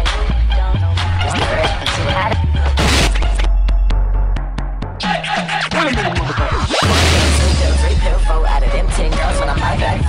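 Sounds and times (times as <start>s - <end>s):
hip hop music: 0.0s - 10.0s.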